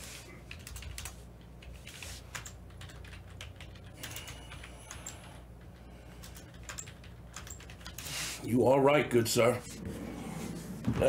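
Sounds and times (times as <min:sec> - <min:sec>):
typing on computer keyboard: 0:00.4 - 0:08.1.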